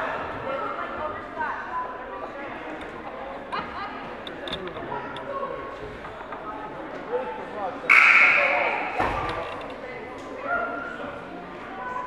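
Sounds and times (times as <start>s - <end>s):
crowd chatter: 0.0s - 12.0s
thump: 9.0s - 9.4s.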